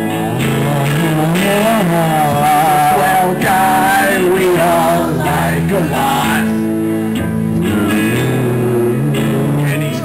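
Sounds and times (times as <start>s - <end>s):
live rock band: 0.0s - 10.0s
sliding bass line: 0.0s - 10.0s.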